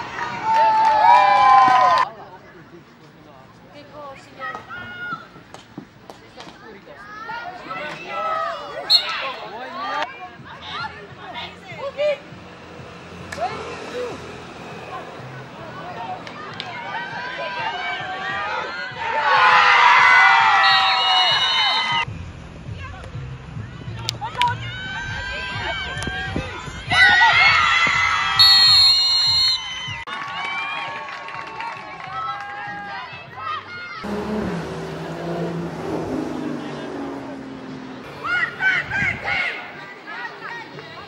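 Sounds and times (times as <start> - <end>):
crowd background: 0.0 - 41.0
players talking close by: 2.0 - 19.4, 32.8 - 41.0
people shouting and calling out: 4.1 - 5.5, 6.5 - 12.4, 13.3 - 22.1, 23.7 - 28.9, 36.5 - 41.0
girls shouting and calling: 4.4 - 5.4, 15.2 - 20.6, 37.0 - 41.0.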